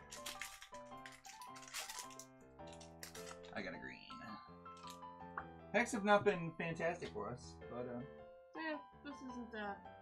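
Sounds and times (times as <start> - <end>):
foil wrapper crinkling and tearing: 0.0 - 3.8
quiet background music: 0.0 - 10.0.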